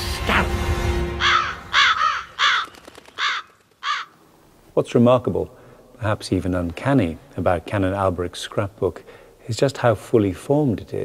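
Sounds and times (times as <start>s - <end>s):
crows cawing: 1.2s - 4.2s.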